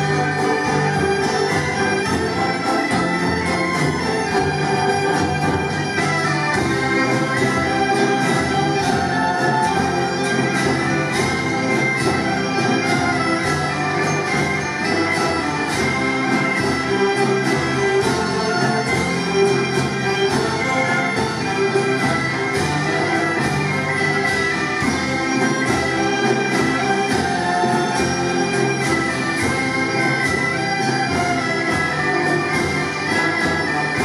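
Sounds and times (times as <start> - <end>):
bagpipes playing a melody: 0.0 - 34.0
concert band and orchestra: 0.0 - 34.0.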